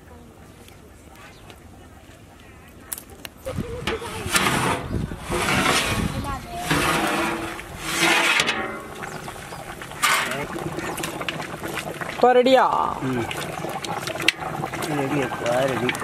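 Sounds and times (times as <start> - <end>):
metal lid scraping on pot: 3.8 - 12.2.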